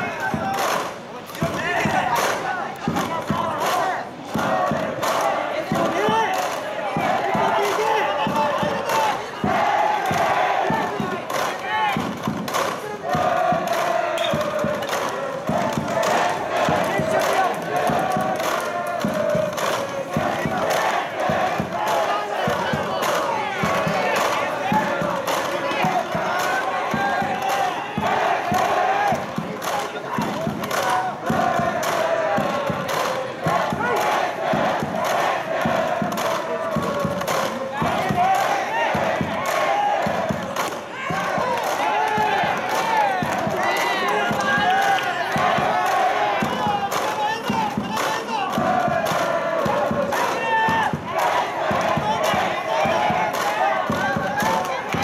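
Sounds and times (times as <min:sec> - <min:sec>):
crowd chanting and shouting: 0:00.0 - 0:55.0
rhythmic beat: 0:00.0 - 0:55.0.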